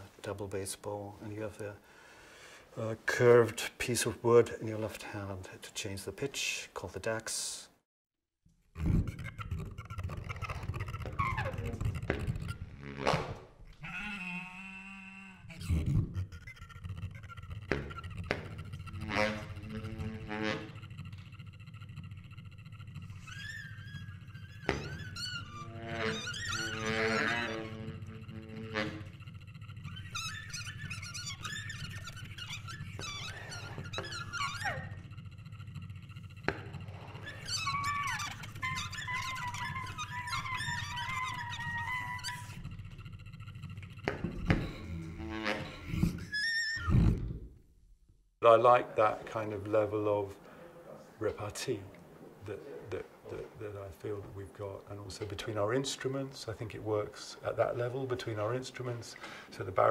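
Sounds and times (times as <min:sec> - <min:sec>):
daxophone squeaks and sliding pitches: 0:08.8 - 0:21.3, 0:23.0 - 0:35.1, 0:36.5 - 0:42.7, 0:44.0 - 0:47.2.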